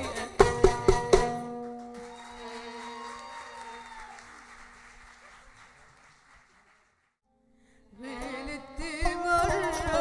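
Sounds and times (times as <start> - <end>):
audience applauding: 1.4 - 7.2.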